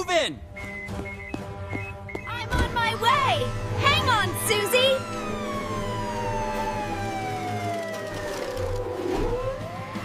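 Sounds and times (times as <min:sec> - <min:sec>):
background music: 0:00.0 - 0:10.0
ambulance siren wailing: 0:02.2 - 0:10.0.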